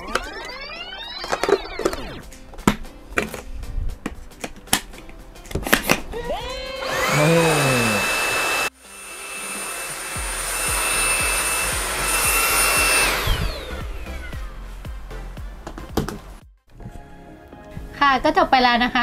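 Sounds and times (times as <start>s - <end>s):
handheld vacuum whining: 0.0s - 2.2s, 6.6s - 14.3s
background music: 0.0s - 8.0s, 8.7s - 19.0s.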